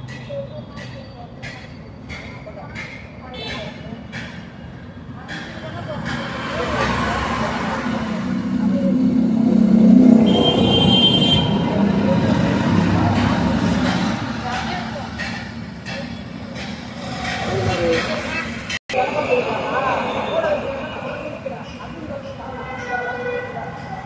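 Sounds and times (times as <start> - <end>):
road vehicle passing: 5.0 - 22.7.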